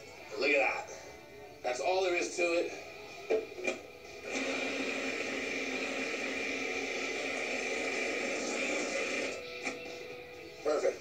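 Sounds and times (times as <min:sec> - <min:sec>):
food processor grinding: 0:04.2 - 0:09.4.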